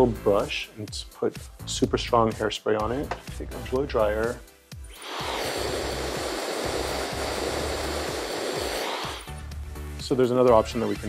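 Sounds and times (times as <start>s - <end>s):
hair dryer blowing: 4.9s - 9.4s.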